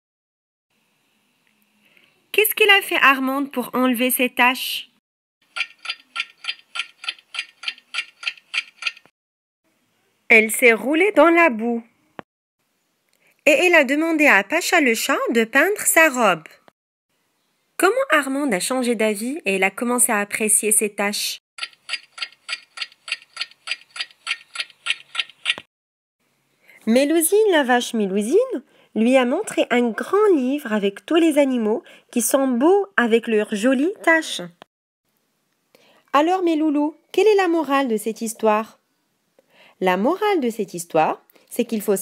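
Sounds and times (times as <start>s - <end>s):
clock ticking: 5.5s - 9.0s.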